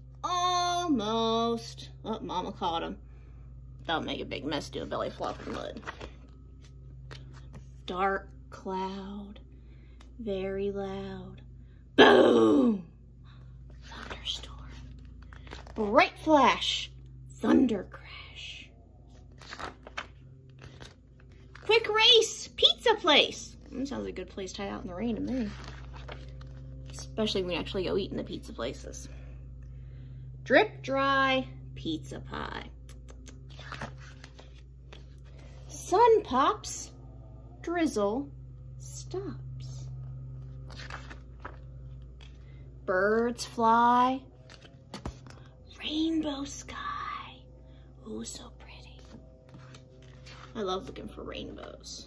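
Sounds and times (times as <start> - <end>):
steady low hum: 0.0 - 52.0
book page being turned: 4.6 - 7.9, 13.7 - 16.2, 19.0 - 21.9, 25.1 - 27.4, 32.9 - 35.7, 40.0 - 42.5, 43.2 - 45.6, 48.8 - 51.8.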